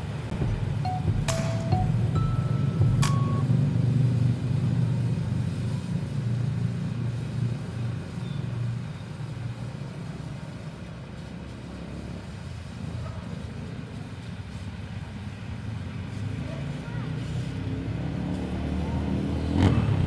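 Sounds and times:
pressure washer spraying concrete: 3.1 - 20.0.

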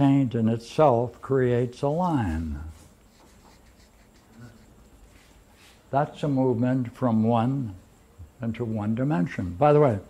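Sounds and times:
marker strokes on paper: 2.1 - 5.8.

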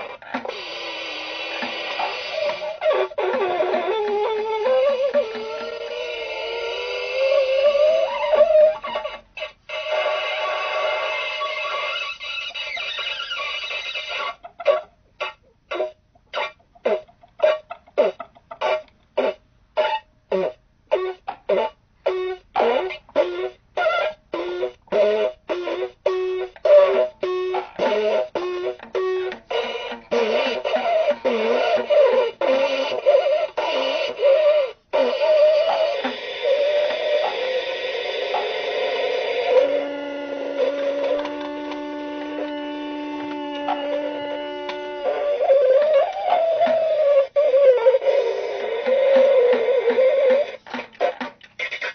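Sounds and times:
buzzy string instrument notes: 24.4 - 47.3.

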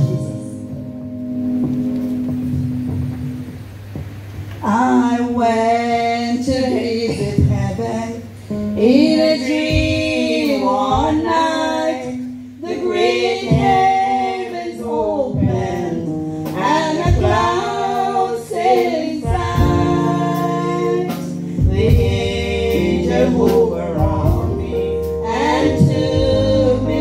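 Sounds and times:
low instrumental sounds: 0.0 - 5.6, 15.4 - 27.0
women's choir singing a cappella: 4.6 - 8.2, 8.8 - 27.0.

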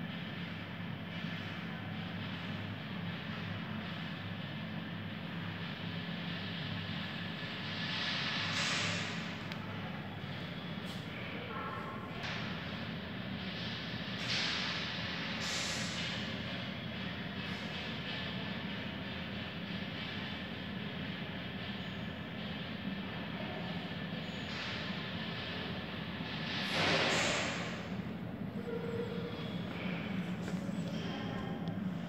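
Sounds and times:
mechanical rumble with hum: 0.0 - 32.0.

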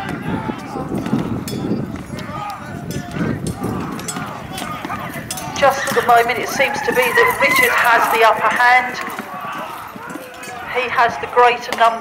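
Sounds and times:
men shouting: 0.0 - 11.7
horse hoofbeats: 0.0 - 12.0.

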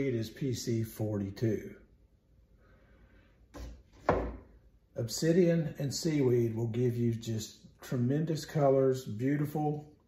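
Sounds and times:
plastic jar knocking on wood: 3.6 - 4.5.

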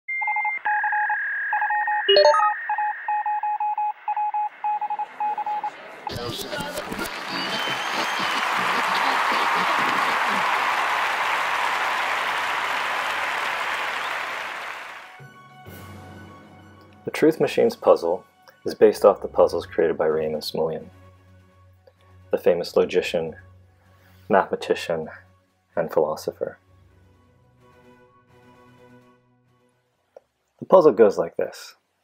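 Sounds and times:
electronic keypad beeps: 0.1 - 5.7
rising electronic chirp: 0.8 - 5.7
studio audience applauding: 6.1 - 15.2.

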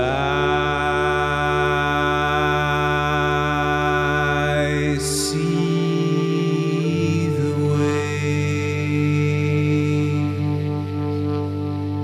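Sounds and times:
man singing long note: 0.0 - 12.0
steady low drone: 0.0 - 12.0.

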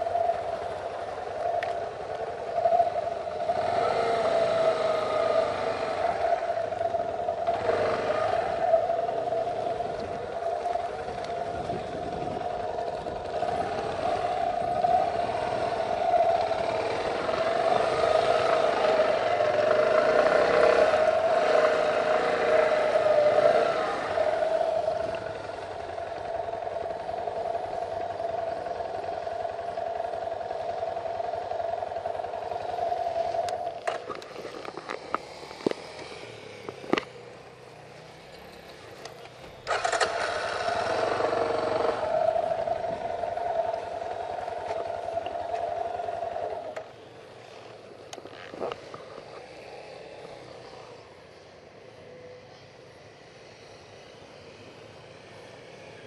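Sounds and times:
vehicle engine running: 0.0 - 51.6.

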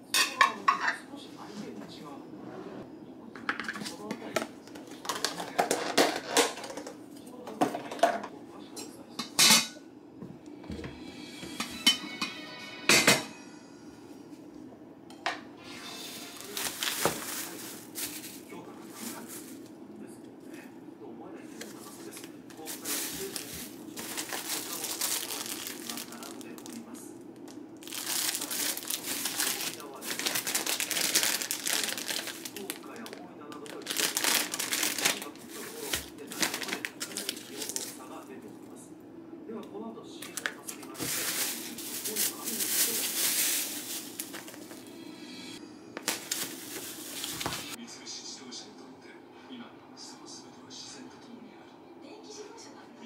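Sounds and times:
plastic bag crinkling: 4.6 - 6.3, 16.4 - 19.7, 21.6 - 38.3, 40.2 - 44.9, 46.0 - 47.8.

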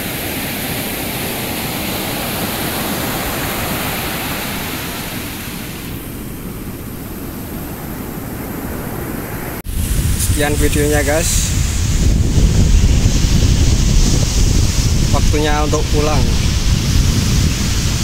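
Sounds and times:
ocean surf breaking on beach: 0.0 - 18.0.

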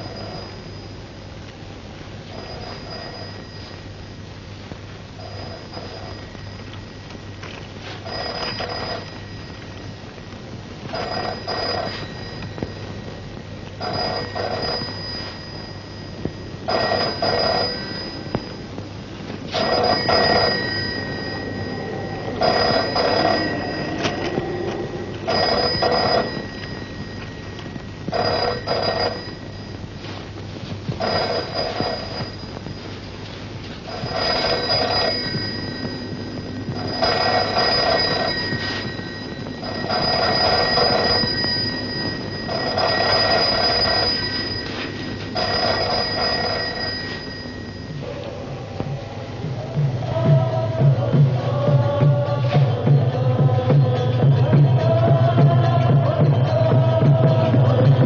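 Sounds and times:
telephone bell ringing: 0.0 - 1.1, 2.3 - 4.0, 5.2 - 10.0, 10.8 - 30.2, 30.9 - 48.2
steady high whine: 0.0 - 58.0.

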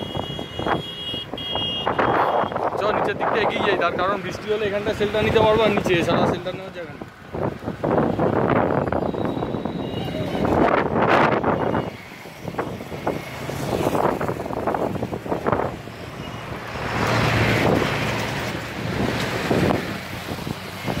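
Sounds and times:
gusty wind on microphone: 0.0 - 4.2, 4.8 - 21.0
road traffic passing: 0.0 - 21.0.

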